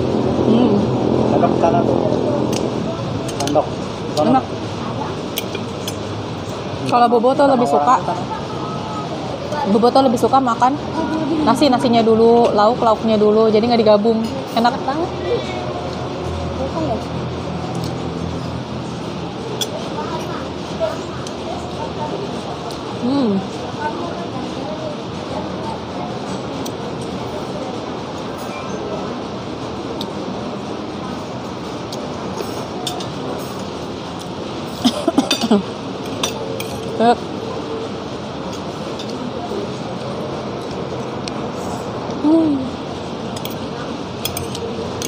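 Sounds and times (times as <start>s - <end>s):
faint voices: 0.0s - 45.0s.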